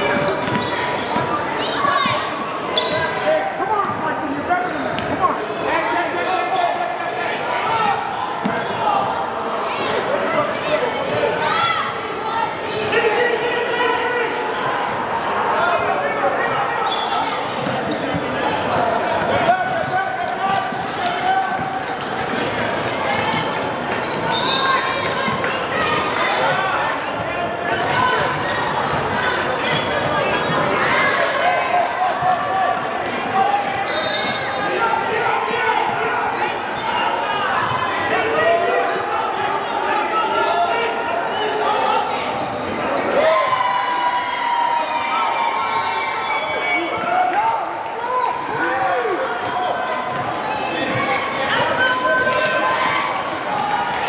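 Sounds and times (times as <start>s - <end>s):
chatter and calls in a hall: 0.0s - 54.0s.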